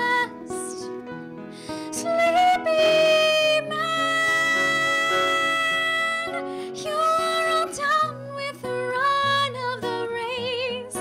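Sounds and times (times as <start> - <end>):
soft piano and guitar: 0.0 - 11.0
woman singing a ballad: 0.0 - 11.0.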